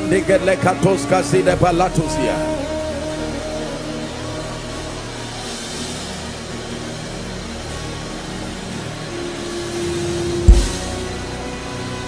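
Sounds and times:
large hall ambience: 0.0s - 12.0s
soft worship keyboard music: 0.0s - 12.0s.

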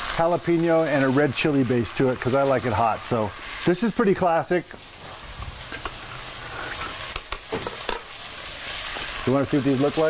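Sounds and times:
dumplings sizzling in a pan: 0.0s - 10.0s.

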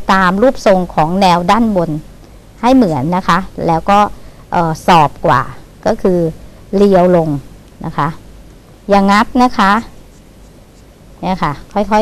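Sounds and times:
woman speaking: 0.0s - 8.2s, 8.9s - 10.0s, 11.2s - 12.0s.

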